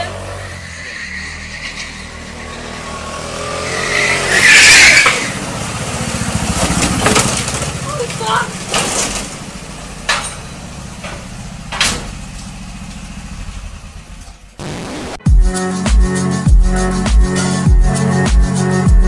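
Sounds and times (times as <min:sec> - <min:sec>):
vehicle engine running: 0:05.0 - 0:15.2.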